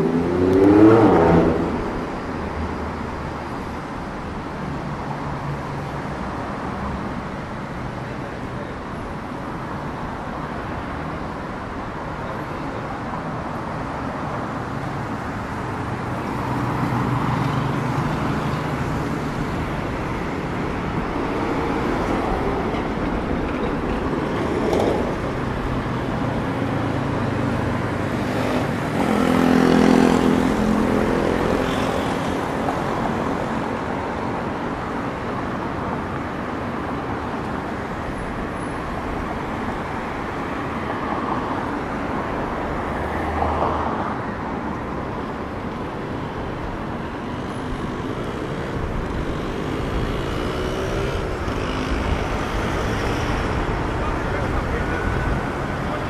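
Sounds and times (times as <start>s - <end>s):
loud engine passing: 0.0s - 2.0s
city road traffic: 0.0s - 56.0s.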